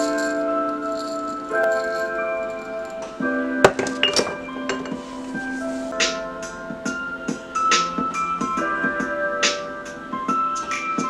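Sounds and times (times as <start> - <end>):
background music: 0.0 - 11.0.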